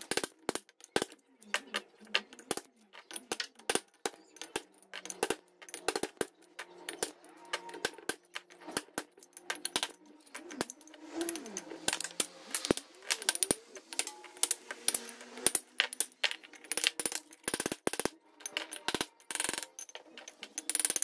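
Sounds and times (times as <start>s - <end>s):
steel chisel clinking on stone: 0.0s - 21.0s
stone pieces clattering: 0.0s - 21.0s.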